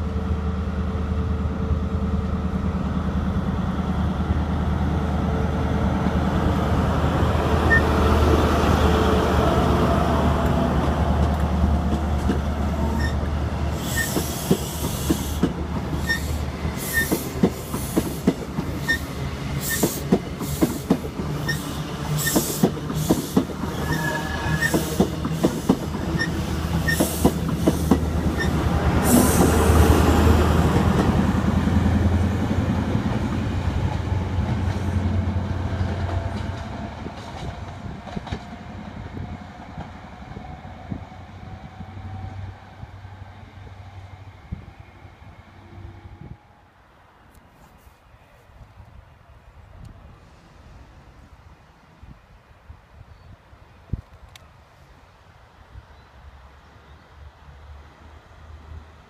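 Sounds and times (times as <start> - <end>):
train wheels clicking over rail joints: 10.8 - 24.0, 24.6 - 29.7.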